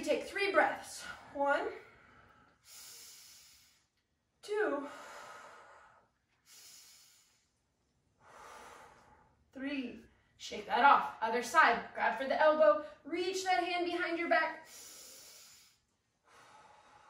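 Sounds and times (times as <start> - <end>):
woman breathing deeply: 1.0 - 3.9, 4.8 - 7.6, 8.2 - 9.4, 14.7 - 17.0.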